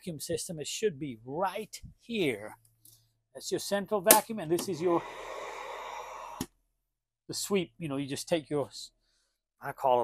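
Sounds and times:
vacuum inlet rush of air: 0:04.6 - 0:06.4.

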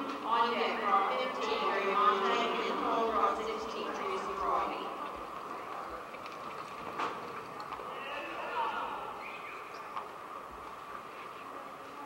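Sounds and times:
arena background hum: 0:00.0 - 0:12.0.

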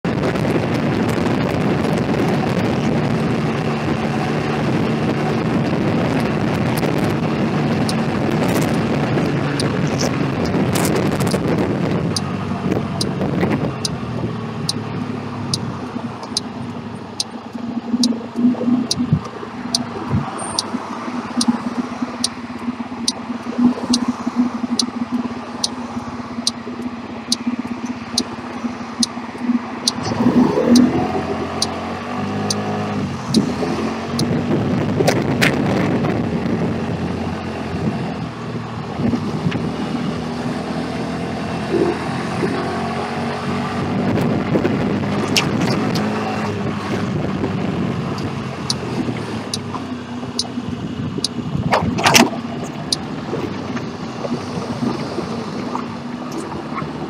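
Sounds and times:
wind noise: 0:00.0 - 0:57.0
regular high tick: 0:06.7 - 0:14.0, 0:14.6 - 0:34.3, 0:48.1 - 0:50.6, 0:51.2 - 0:53.1.

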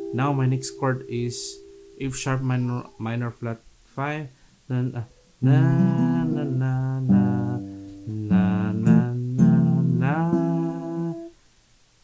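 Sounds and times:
acoustic guitar chords: 0:00.0 - 0:03.5, 0:04.7 - 0:11.4
man singing: 0:04.7 - 0:11.3.

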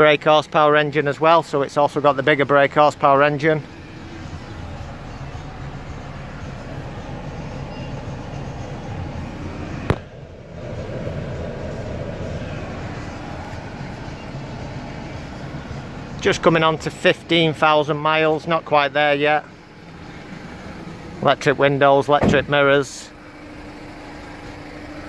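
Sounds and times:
diesel engine idling: 0:00.0 - 0:25.0.

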